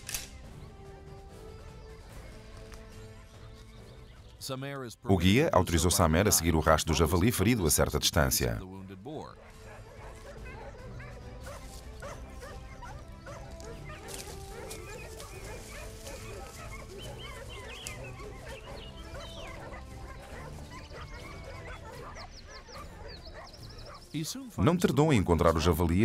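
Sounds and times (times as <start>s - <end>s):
background music: 0.0s - 26.0s
dogs barking and yelping: 9.4s - 24.2s.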